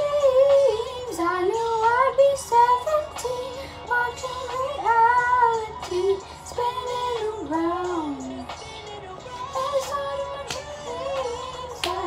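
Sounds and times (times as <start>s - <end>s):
woman singing wordless melody: 0.0s - 12.0s.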